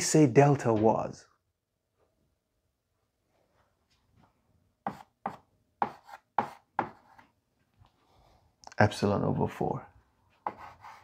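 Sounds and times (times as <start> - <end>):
chalk writing on blackboard: 4.8 - 7.3, 10.4 - 11.0.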